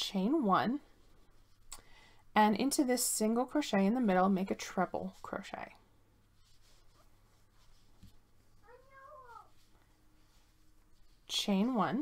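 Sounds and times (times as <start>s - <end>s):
faint cat meow: 8.6s - 9.6s.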